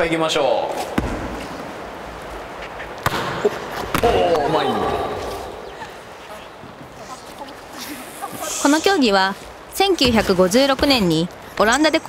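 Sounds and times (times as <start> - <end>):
volleyball slaps and bounces: 0.8 - 1.5, 3.0 - 4.4.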